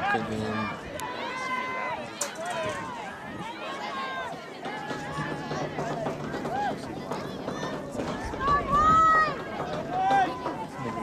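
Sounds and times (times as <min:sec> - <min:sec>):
people shouting: 0:07.5 - 0:11.0.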